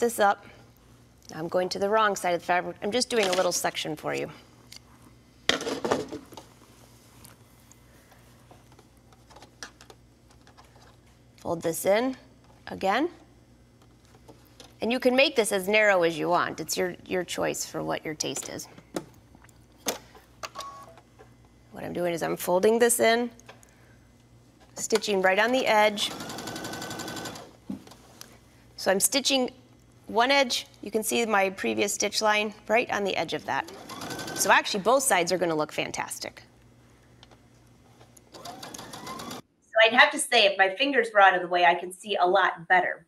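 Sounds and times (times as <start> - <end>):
sewing machine hum: 25.8 - 27.6, 33.6 - 34.7, 38.3 - 39.4.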